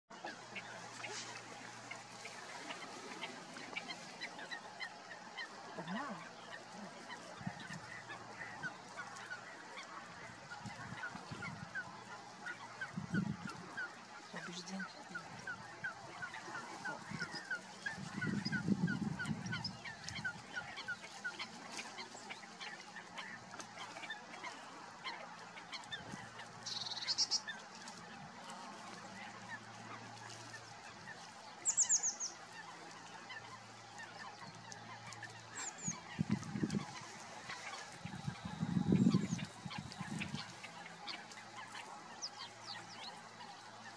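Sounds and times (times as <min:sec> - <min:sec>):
birds chirping: 0:00.2 - 0:43.9
swan making soft low calls: 0:00.2 - 0:43.9.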